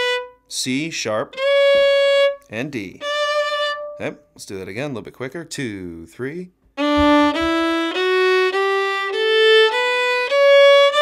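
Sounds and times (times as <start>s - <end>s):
fiddle playing ascending scale: 1.3s - 2.4s, 3.0s - 4.1s, 6.8s - 11.0s.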